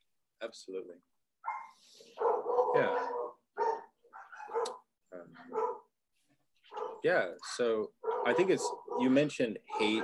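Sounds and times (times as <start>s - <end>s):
dogs barking: 1.4s - 5.9s, 6.7s - 7.1s, 8.0s - 10.0s.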